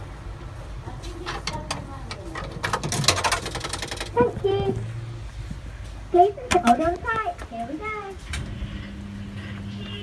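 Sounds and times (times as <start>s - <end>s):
coin mechanism clicks and rattles: 1.4s - 4.2s.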